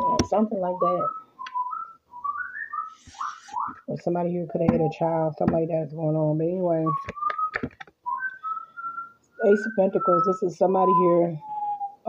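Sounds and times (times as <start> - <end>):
person whistling short notes: 0.0 - 3.9, 6.9 - 12.0.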